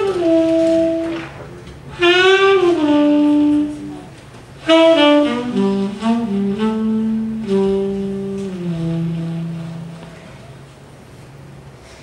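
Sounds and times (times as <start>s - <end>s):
quiet low backing music: 0.0s - 12.0s
saxophone playing slow jazz: 0.0s - 12.0s.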